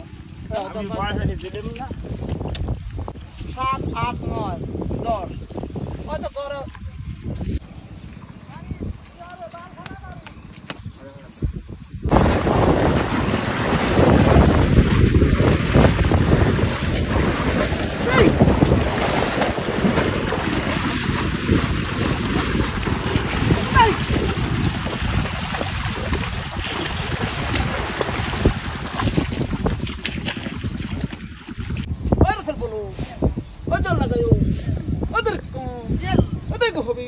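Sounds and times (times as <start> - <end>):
muddy water splashing: 12.1 - 32.0.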